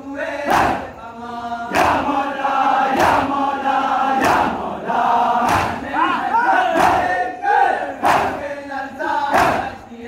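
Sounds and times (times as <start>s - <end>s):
crowd of men chanting: 0.0s - 10.0s.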